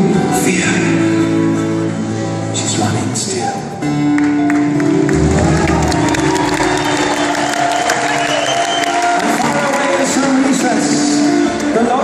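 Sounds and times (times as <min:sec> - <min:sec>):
live band music: 0:00.0 - 0:12.0
audience clapping and cheering: 0:04.0 - 0:11.8.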